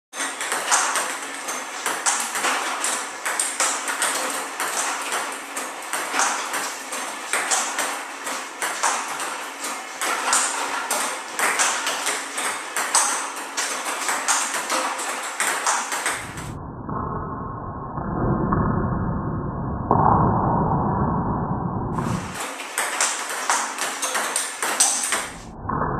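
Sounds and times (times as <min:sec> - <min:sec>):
table tennis ball pocks: 0:00.2 - 0:16.6.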